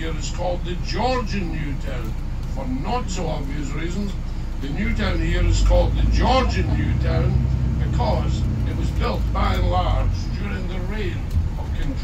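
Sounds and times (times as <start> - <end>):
bus engine rumble: 0.0 - 12.0
man speaking: 0.0 - 12.0.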